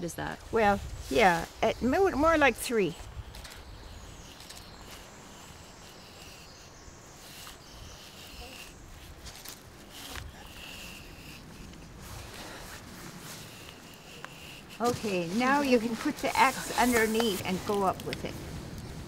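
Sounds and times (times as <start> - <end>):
knife scraping bark: 1.1 - 18.3.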